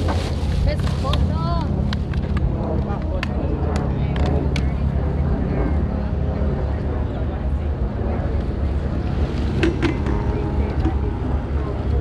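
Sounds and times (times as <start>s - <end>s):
boat engine rumble: 0.0s - 12.0s
wind on microphone: 0.0s - 12.0s
people talking: 0.6s - 1.8s, 2.7s - 12.0s.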